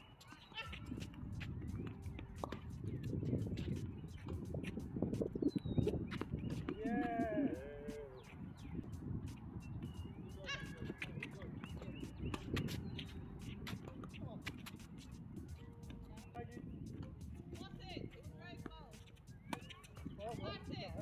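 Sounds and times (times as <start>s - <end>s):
tennis balls struck and bouncing: 0.0s - 21.0s
players' footsteps: 0.2s - 21.0s
person calling out: 6.8s - 8.1s.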